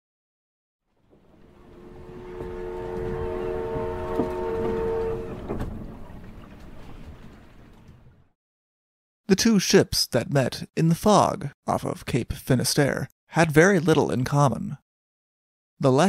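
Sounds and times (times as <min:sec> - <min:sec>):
rumbling wash of noise: 0:01.0 - 0:07.6
ship's horn chord: 0:01.1 - 0:06.6.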